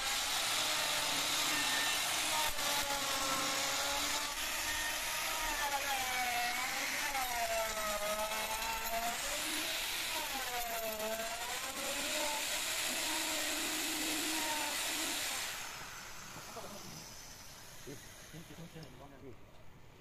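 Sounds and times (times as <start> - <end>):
electric router cutting wood: 0.0 - 19.0.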